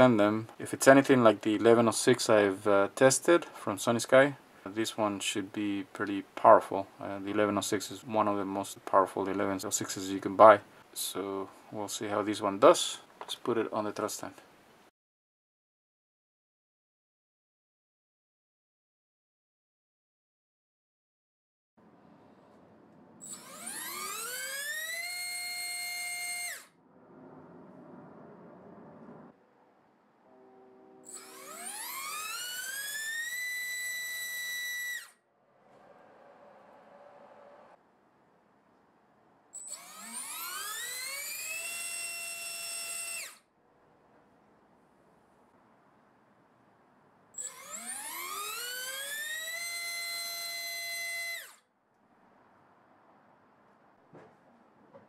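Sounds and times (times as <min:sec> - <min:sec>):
electric motor whine: 0:23.2 - 0:26.7, 0:30.4 - 0:35.1, 0:39.6 - 0:43.4, 0:47.4 - 0:51.6.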